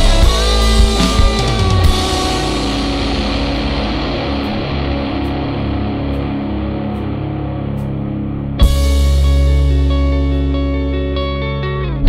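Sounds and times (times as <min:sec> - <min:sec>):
distorted guitar and bass drone: 0:00.0 - 0:12.0.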